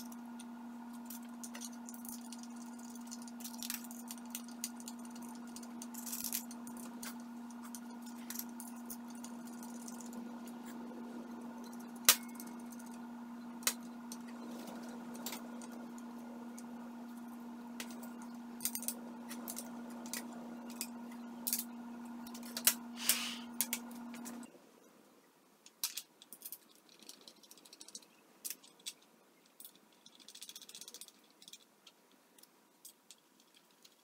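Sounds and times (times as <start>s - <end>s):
steady hum: 0.0s - 24.9s
metallic clicks and rattles of tools: 25.6s - 34.0s.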